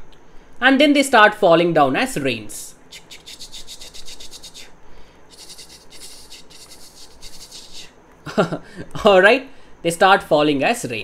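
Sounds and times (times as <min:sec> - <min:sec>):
stylus scratching on drawing tablet: 0:03.0 - 0:04.7, 0:05.3 - 0:07.9.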